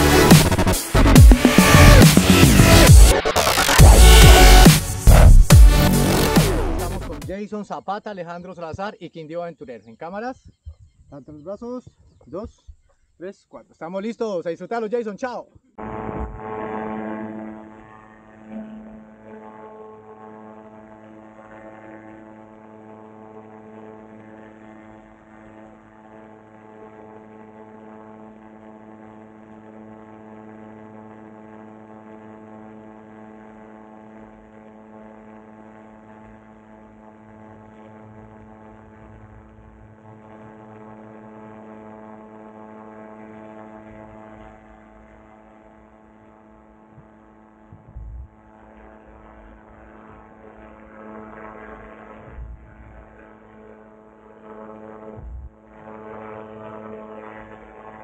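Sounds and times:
wind rumble on microphone: 10.4 - 11.2, 15.8 - 16.7, 46.9 - 48.4, 52.1 - 53.3, 55.1 - 55.6
engine and propeller droning: 15.8 - 58.0
short thump: 46.9 - 48.3, 52.2 - 53.0, 55.2 - 55.5.

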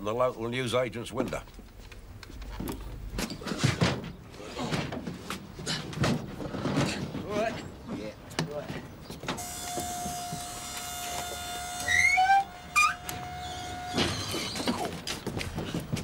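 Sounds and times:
short rising squeaks: 9.4 - 15.1
electric tail lift motor whining: 9.4 - 15.3.

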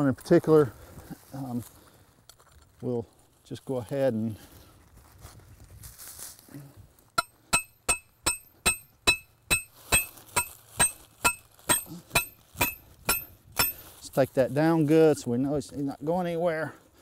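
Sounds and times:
hammer striking metal stake: 7.2 - 13.8.

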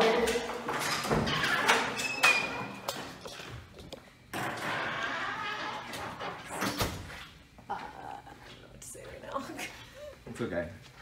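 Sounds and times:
door squeak: 1.0 - 2.8, 4.4 - 7.0
faint footsteps: 7.0 - 11.0.

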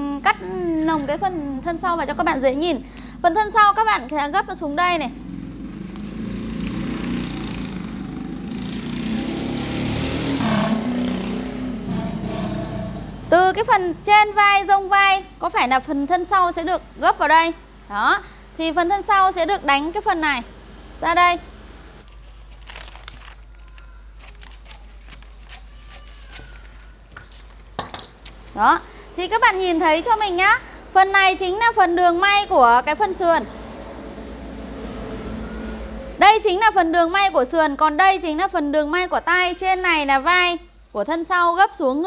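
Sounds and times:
shears snipping paper: 22.1 - 27.5
paper rustling: 22.1 - 28.6.

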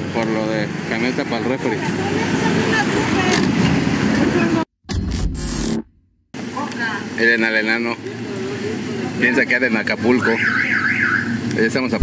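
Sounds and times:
street and vehicle noise: 0.0 - 12.0.

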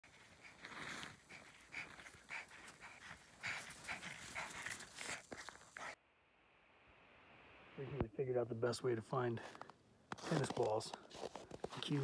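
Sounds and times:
dog panting: 0.0 - 6.0.

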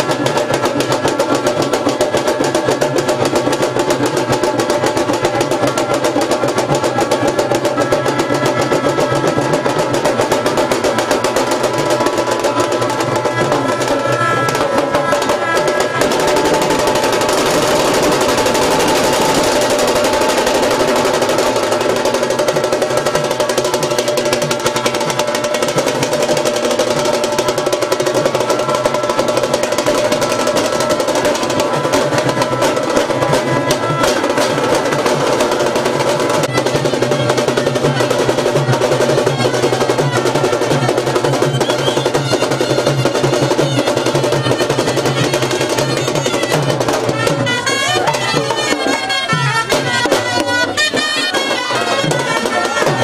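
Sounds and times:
drums beating fast rhythm: 0.0 - 53.0.

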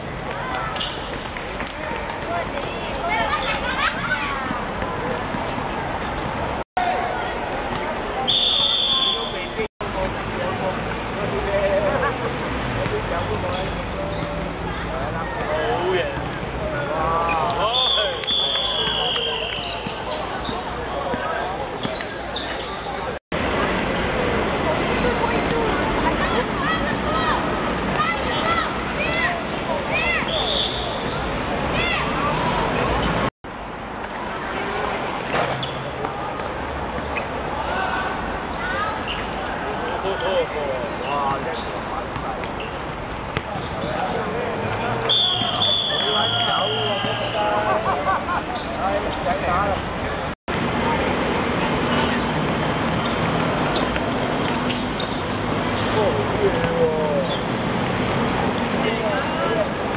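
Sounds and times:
steady background noise: 0.0 - 59.9
players' voices: 0.2 - 33.3, 34.1 - 59.9
shoe squeaks on court: 0.7 - 1.8, 13.2 - 14.6, 17.2 - 23.2, 29.1 - 31.3, 32.6 - 36.0, 37.0 - 37.4, 41.0 - 47.4, 52.1 - 59.9.

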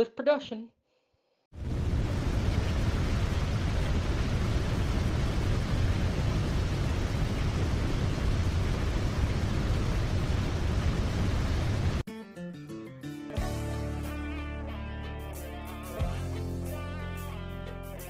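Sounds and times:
deep rushing rumble: 1.6 - 12.0.

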